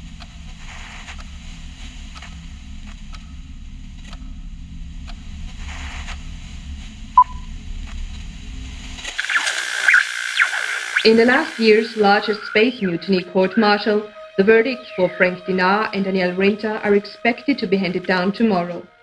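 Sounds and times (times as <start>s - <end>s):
low electronic hum: 0.0s - 19.0s
short beep: 7.2s - 7.5s
radio static with interference: 9.0s - 18.8s.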